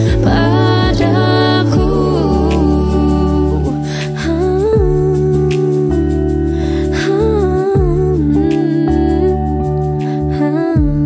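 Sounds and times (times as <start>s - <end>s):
woman humming a melody: 0.0s - 6.0s, 7.1s - 9.6s, 10.4s - 11.0s
low bass notes: 0.0s - 10.0s
soft musical accompaniment: 0.0s - 11.0s.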